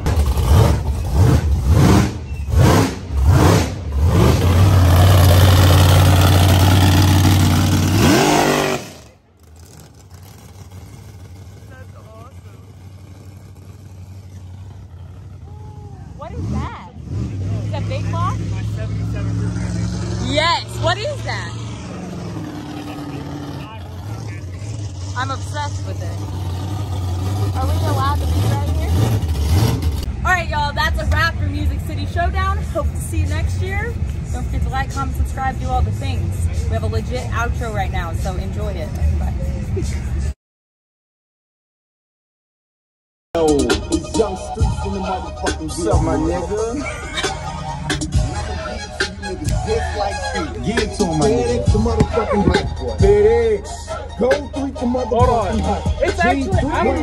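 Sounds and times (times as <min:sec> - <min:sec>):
pickup truck engine revving: 0:00.0 - 0:33.0, 0:43.4 - 0:57.0
pickup engine running steadily: 0:09.2 - 0:40.3, 0:43.4 - 0:57.0.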